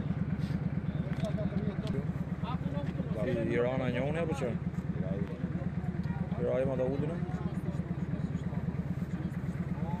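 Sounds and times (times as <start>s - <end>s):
faint people's voices: 0.0s - 10.0s
vehicle engine idling: 0.0s - 10.0s.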